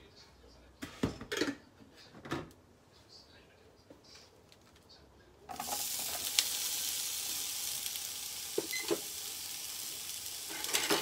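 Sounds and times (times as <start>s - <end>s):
peppers sizzling in hot oil: 5.5s - 11.0s.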